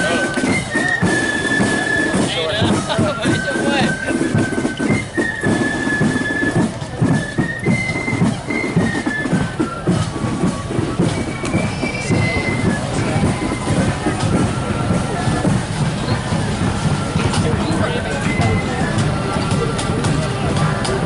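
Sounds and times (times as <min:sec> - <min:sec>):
crowd and footsteps rumble: 0:00.0 - 0:21.0
marching band melody: 0:00.0 - 0:21.0.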